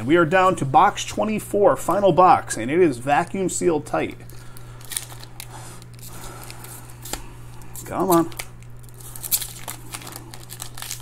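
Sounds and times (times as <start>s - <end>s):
foil pack crinkling: 4.0s - 11.0s.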